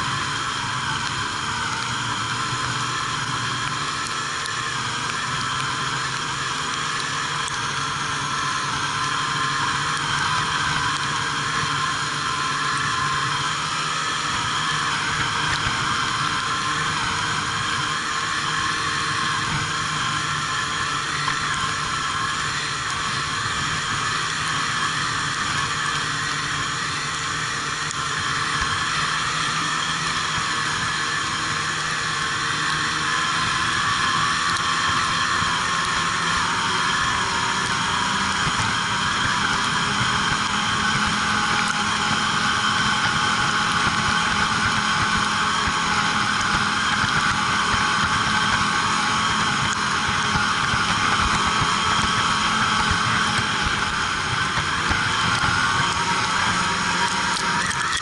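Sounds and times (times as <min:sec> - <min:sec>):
snowmobile engine droning: 0:00.0 - 0:58.0.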